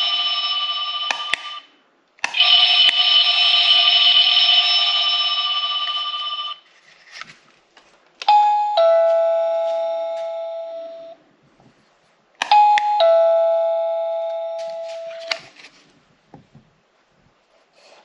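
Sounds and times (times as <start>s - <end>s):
doorbell chime tune: 0.0s - 1.6s, 2.4s - 6.6s, 8.3s - 11.2s, 12.5s - 15.4s
doorbell receiver click: 8.2s - 11.2s, 12.4s - 15.4s
two-note ding-dong doorbell: 8.3s - 11.2s, 12.4s - 15.4s.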